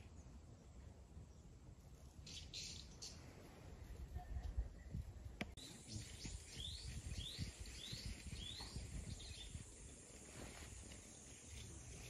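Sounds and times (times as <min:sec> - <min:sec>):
bird calling: 0:02.2 - 0:03.5.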